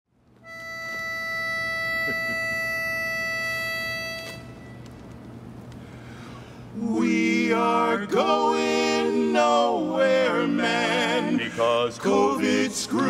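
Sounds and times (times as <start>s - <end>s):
faint steady hum: 0.2s - 13.0s
pitch pipe steady note: 0.4s - 4.8s.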